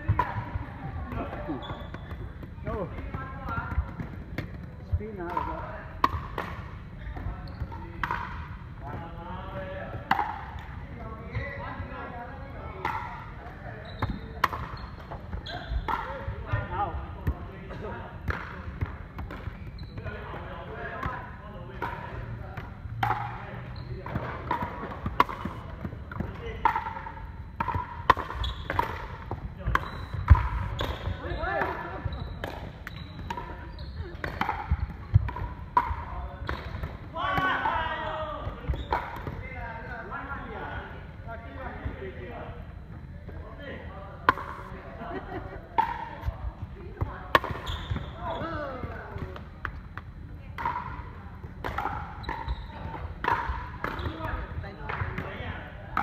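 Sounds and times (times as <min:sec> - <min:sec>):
ball bouncing on wooden court: 0:00.0 - 0:09.1, 0:13.8 - 0:37.8, 0:38.4 - 0:39.6, 0:45.8 - 0:55.4.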